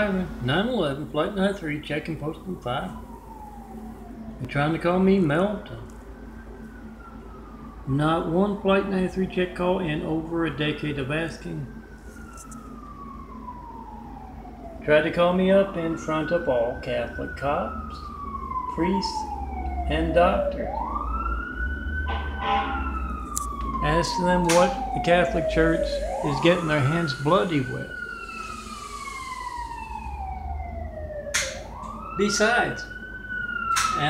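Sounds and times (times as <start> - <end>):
emergency vehicle siren wailing: 0.0 - 34.0.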